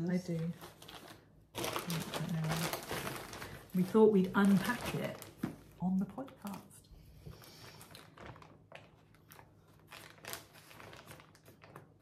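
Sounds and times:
packaging crinkling and rustling: 0:00.0 - 0:12.0.

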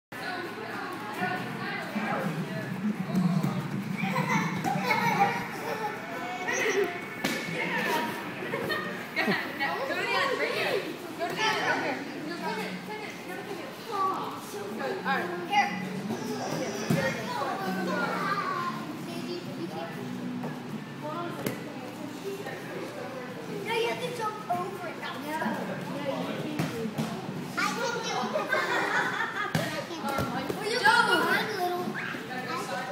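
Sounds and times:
young children chattering and calling: 0:00.2 - 0:32.9.

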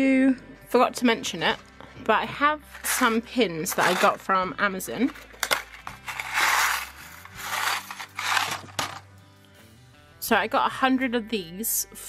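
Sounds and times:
cardboard box rustling: 0:02.8 - 0:04.2
metal pins rattling in box: 0:05.4 - 0:09.0.

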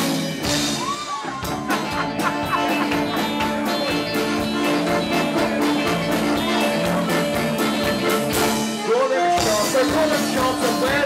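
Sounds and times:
electric guitar: 0:00.0 - 0:11.0
steady drumbeat: 0:00.0 - 0:11.0
piano accordion: 0:01.8 - 0:11.0.

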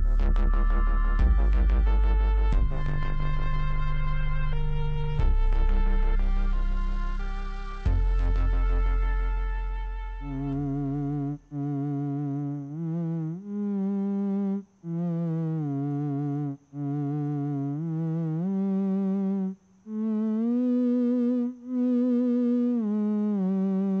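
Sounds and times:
theremin melody with vibrato: 0:00.0 - 0:24.0.

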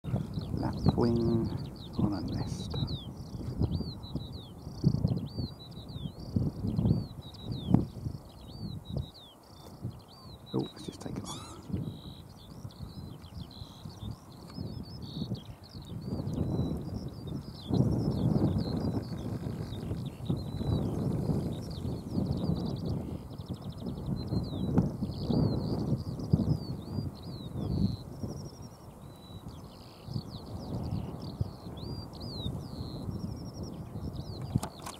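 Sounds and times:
birds twittering: 0:00.0 - 0:34.9
wind rumbling on microphone: 0:00.0 - 0:34.9.

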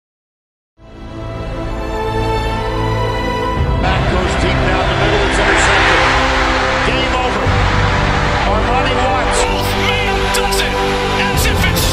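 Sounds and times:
indistinct voices: 0:03.8 - 0:10.8
stadium crowd noise: 0:03.9 - 0:10.1.

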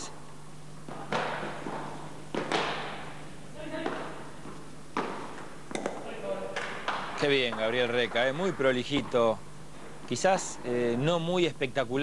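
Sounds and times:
ball hitting paddles: 0:00.8 - 0:03.2, 0:03.8 - 0:10.1.

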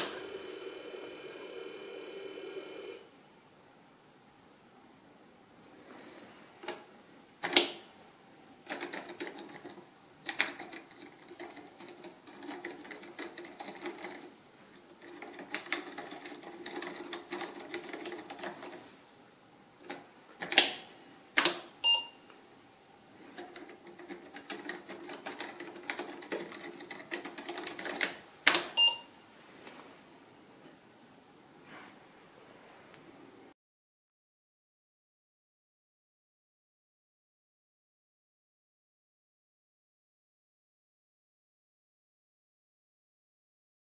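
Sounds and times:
short computer beep: 0:21.8 - 0:22.2, 0:28.8 - 0:29.1.

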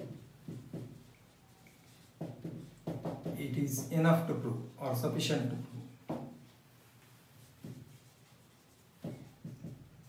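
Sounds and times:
marker writing on whiteboard: 0:00.0 - 0:04.5, 0:05.8 - 0:06.6, 0:07.3 - 0:10.0.

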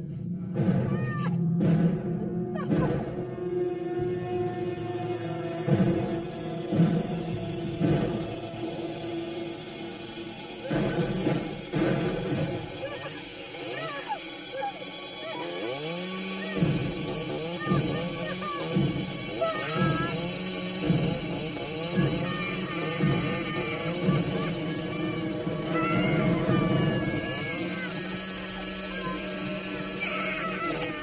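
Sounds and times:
tense horror music: 0:00.0 - 0:31.0
chainsaw engine revving: 0:00.5 - 0:31.0.

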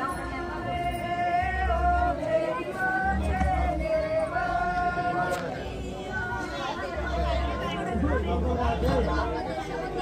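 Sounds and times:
crowd talking: 0:00.0 - 0:10.0.

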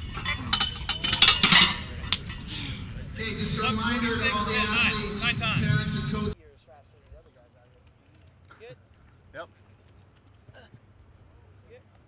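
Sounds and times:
barbell metal clanks: 0:00.0 - 0:02.9
weight plates rattling: 0:00.0 - 0:03.1.

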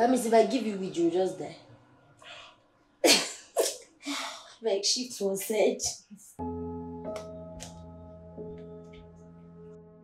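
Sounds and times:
woman sneezing: 0:03.0 - 0:03.9.

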